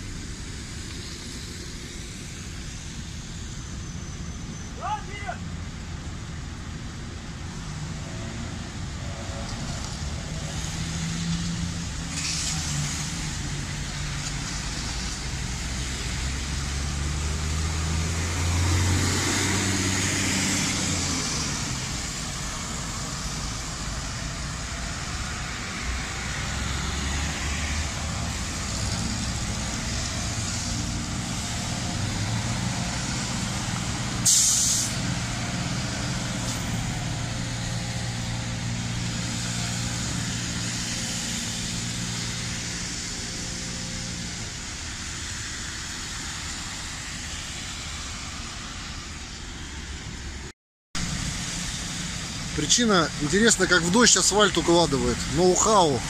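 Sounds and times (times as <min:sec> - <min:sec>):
road noise: 0:00.0 - 0:56.0
air brake hiss: 0:34.2 - 0:35.0.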